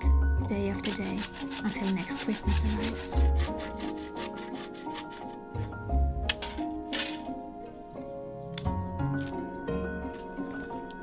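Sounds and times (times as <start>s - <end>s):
hand saw cutting wood: 0.6s - 5.4s
background music with bass: 5.4s - 11.0s.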